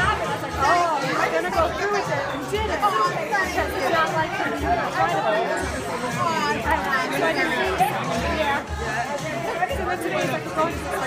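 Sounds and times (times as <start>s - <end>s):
background music: 0.0s - 11.0s
people talking over one another: 0.0s - 11.0s.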